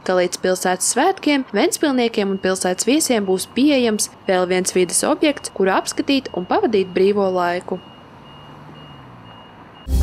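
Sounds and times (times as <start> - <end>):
street noise: 0.0 - 10.0
reversing alarm: 1.6 - 10.0.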